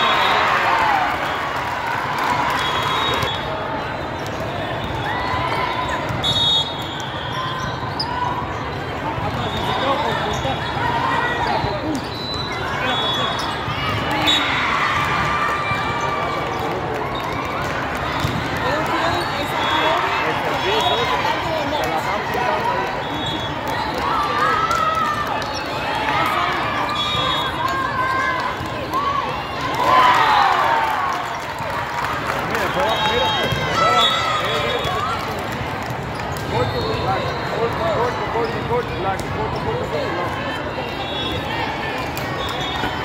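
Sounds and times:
hubbub of many voices: 0.0s - 43.0s.

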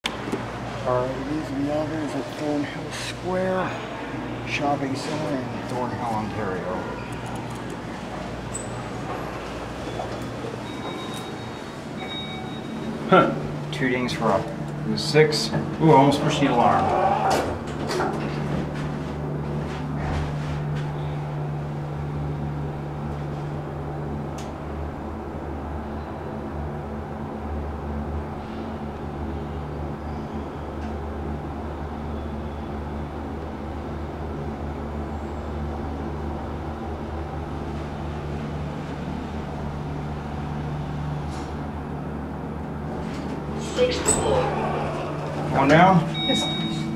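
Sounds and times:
elevator humming: 0.0s - 46.9s.

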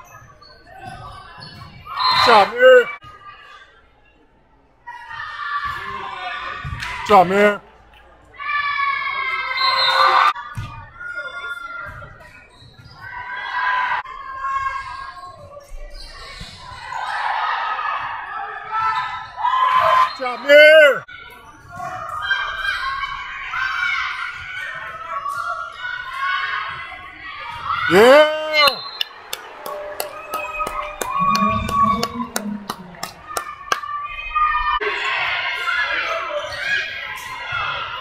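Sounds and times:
people shouting in a gymnasium: 0.0s - 4.0s, 4.8s - 7.6s, 8.3s - 38.0s
people shouting and chanting: 2.0s - 3.0s, 25.6s - 38.0s
rhythmic hand clapping: 28.7s - 33.9s.

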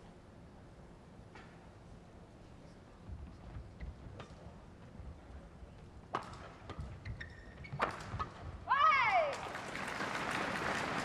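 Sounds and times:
racket striking shuttlecock: 6.1s - 8.5s
shoe squeaks on court: 6.8s - 8.4s
loud shout: 8.7s - 9.4s
crowd noise: 9.2s - 11.0s.

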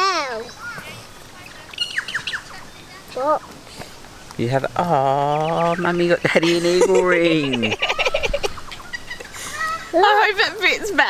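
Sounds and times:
bird chirping: 0.3s - 11.0s.

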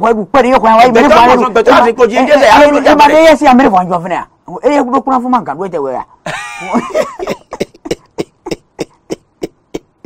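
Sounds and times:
man laughing in sharp pulses: 6.3s - 10.0s.

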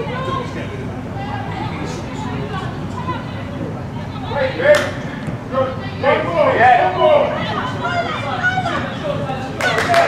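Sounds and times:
crowd shouting and calling out: 0.0s - 10.0s.

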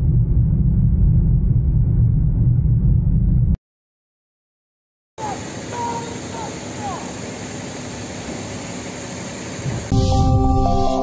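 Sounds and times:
fire hoses rushing: 5.2s - 10.3s
electronic logo jingle: 9.9s - 11.0s.

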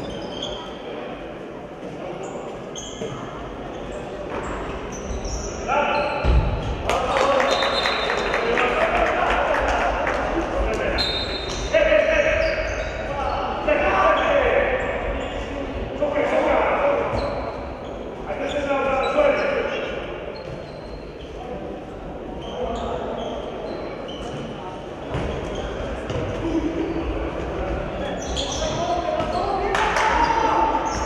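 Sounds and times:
shoe squeaks: 0.0s - 0.9s, 2.2s - 6.7s, 10.9s - 15.5s, 17.0s - 21.6s, 22.3s - 27.1s, 28.0s - 31.0s.

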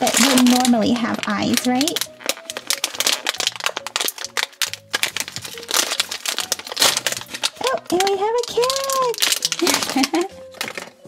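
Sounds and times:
background music with held notes: 0.0s - 11.0s
foil packet crinkling and tearing: 0.0s - 11.0s.

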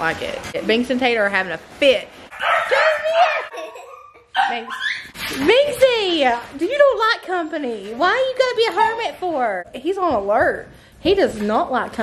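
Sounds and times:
woman calling to a dog: 2.4s - 3.5s, 4.4s - 5.0s
woman laughing: 3.0s - 5.0s.

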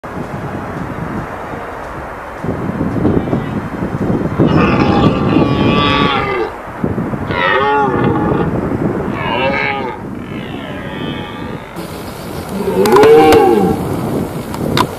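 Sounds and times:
deer stag roaring: 4.4s - 6.6s, 7.3s - 8.5s, 9.1s - 11.8s, 12.5s - 14.0s
steady noise: 11.7s - 14.9s.

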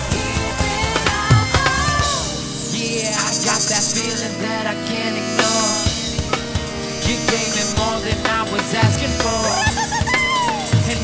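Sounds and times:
drum kit beat: 0.0s - 2.6s, 5.3s - 11.0s
upbeat live band music: 0.0s - 2.6s, 4.7s - 11.0s.

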